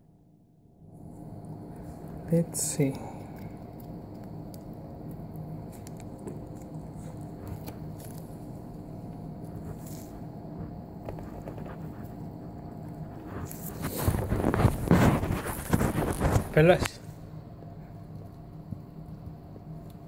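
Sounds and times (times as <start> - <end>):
faint room hum: 0.0 - 20.0.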